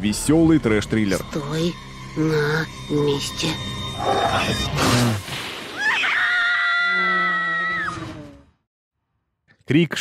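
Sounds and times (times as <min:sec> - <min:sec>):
long high scream: 0:05.8 - 0:08.0.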